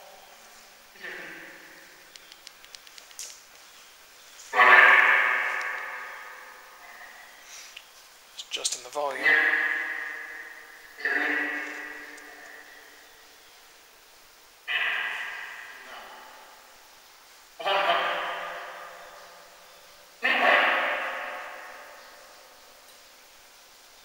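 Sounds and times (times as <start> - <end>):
electronic voice fragments with echo: 1.0 - 1.6, 4.5 - 5.8, 8.6 - 9.9, 11.0 - 12.5, 14.7 - 16.4, 17.6 - 18.5, 20.2 - 21.1.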